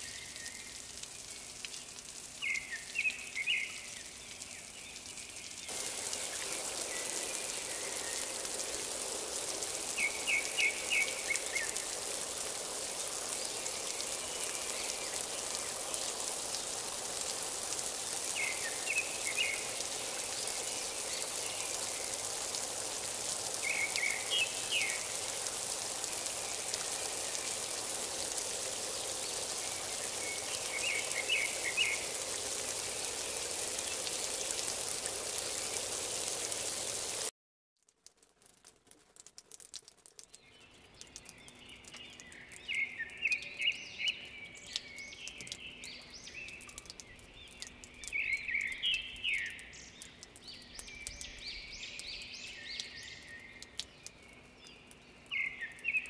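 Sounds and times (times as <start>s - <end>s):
rain hiss: 0.0s - 37.3s, 38.0s - 56.0s.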